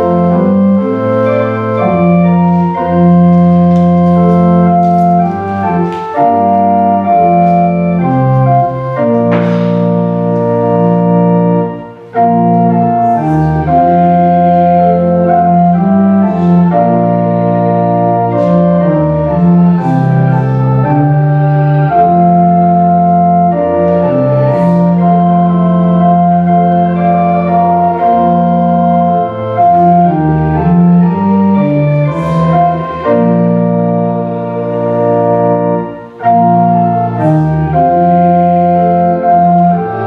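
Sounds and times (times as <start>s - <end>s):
organ playing hymn chords: 0.0s - 40.0s.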